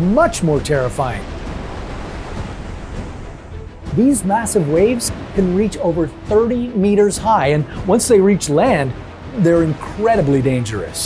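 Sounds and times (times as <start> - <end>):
background music: 0.0 - 11.0
wave surging: 0.0 - 11.0.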